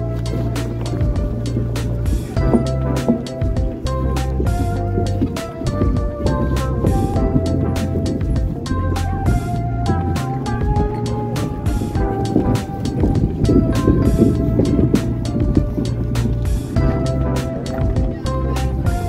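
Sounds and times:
background music with steady beat: 0.0s - 19.0s.

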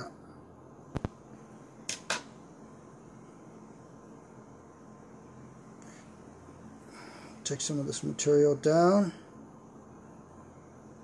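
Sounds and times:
room hiss: 0.0s - 11.0s
sharp click: 1.8s - 2.4s.

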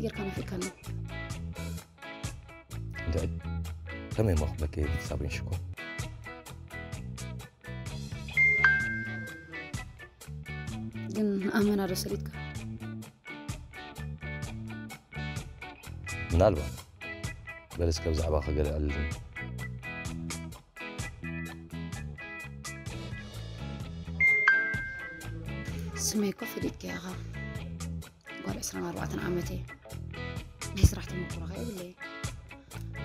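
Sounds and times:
background music with plucked guitar: 0.0s - 33.0s
two-note electronic chime: 8.4s - 9.5s, 24.2s - 25.3s.

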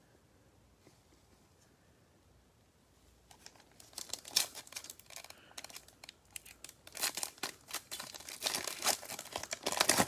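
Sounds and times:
foil wrapper crinkling and tearing: 3.3s - 10.0s.

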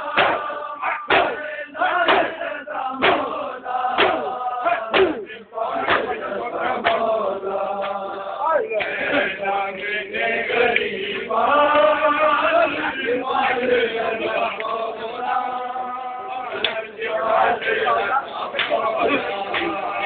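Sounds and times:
men chanting in unison: 0.0s - 20.0s.

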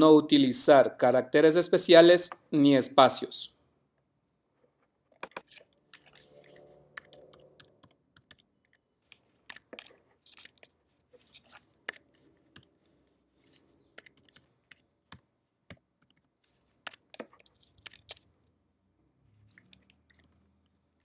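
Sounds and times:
computer keyboard typing: 5.2s - 10.6s, 14.0s - 18.2s, 19.5s - 20.5s.

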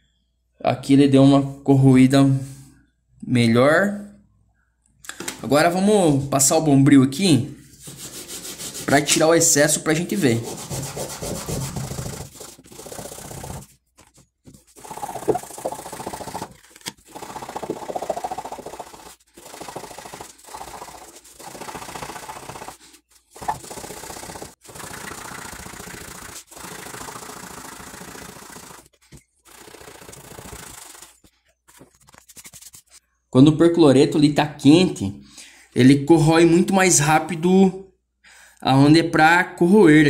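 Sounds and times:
steel wool scrubbing circuit board: 14.7s - 28.8s.

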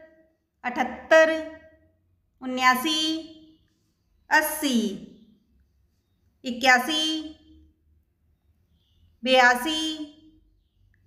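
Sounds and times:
woman speaking: 0.0s - 1.8s, 2.4s - 3.6s, 4.3s - 5.3s, 6.4s - 7.6s, 9.2s - 10.4s.

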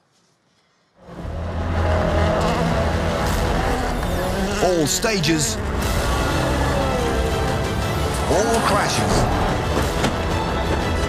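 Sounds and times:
steady low drone: 1.0s - 11.0s
car engine at high revs: 1.1s - 8.6s.

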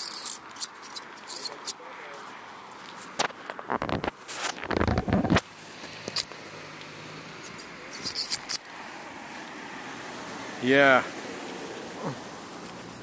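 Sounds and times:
faint outdoor hiss: 0.0s - 13.0s
fingers rubbing on microphone: 2.9s - 5.4s.

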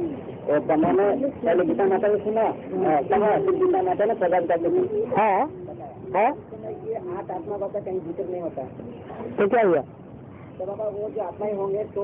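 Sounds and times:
several voices talking: 0.0s - 12.0s.

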